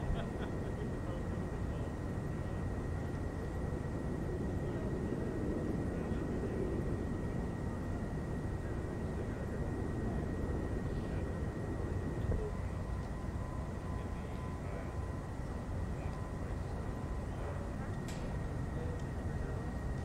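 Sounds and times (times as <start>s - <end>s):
faint high whine: 0.0s - 20.0s.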